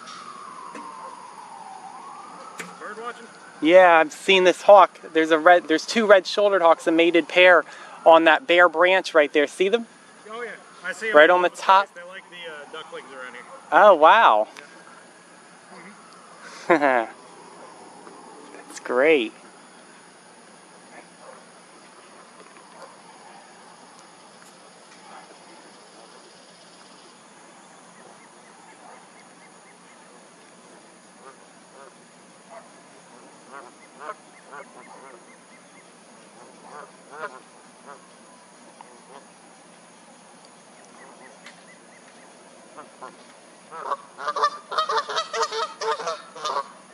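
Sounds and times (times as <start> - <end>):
faint waterfowl honking calls: 27.9 - 39.4, 40.9 - 46.9.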